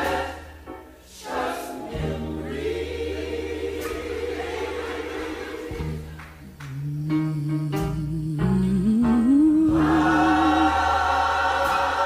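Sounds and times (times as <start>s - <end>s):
choir singing gospel song: 0.0s - 6.7s, 9.4s - 12.0s.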